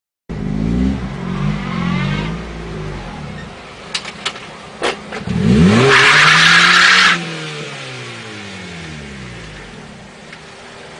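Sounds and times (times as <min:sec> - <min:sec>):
car engine revving: 0:00.3 - 0:03.9, 0:04.8 - 0:10.2
tyres screeching on pavement: 0:01.4 - 0:07.3.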